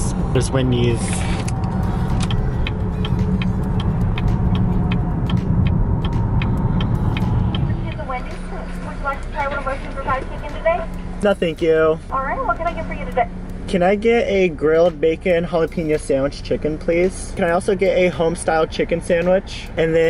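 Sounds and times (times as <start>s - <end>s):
road and wind rumble in a car: 0.0s - 20.0s
voices: 7.2s - 20.0s.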